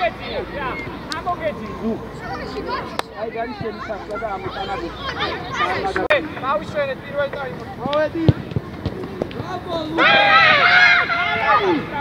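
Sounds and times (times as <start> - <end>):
young voices shouting: 0.0 - 8.2, 9.4 - 12.0.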